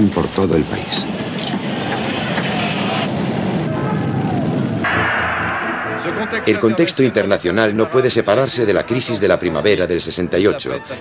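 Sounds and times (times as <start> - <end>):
indistinct voices: 4.9 - 8.1.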